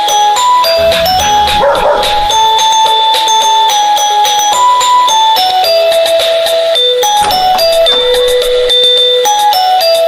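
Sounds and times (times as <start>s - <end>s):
background music held notes: 0.0s - 10.0s
dog bark: 1.4s - 2.6s.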